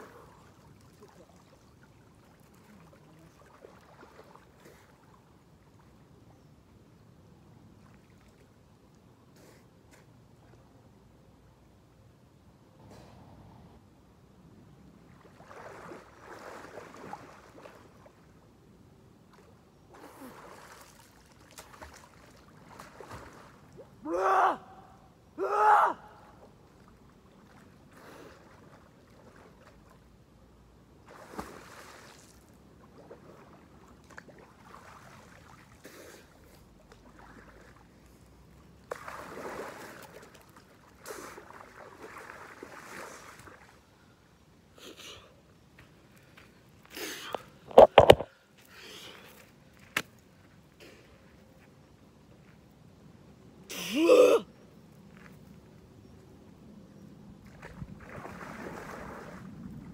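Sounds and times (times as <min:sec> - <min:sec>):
water splashing: 0:00.0 - 0:05.2, 0:15.0 - 0:18.3, 0:20.0 - 0:24.0, 0:31.1 - 0:36.2, 0:38.8 - 0:43.8, 0:57.5 - 0:59.9
person gasping cries: 0:53.7 - 0:54.4.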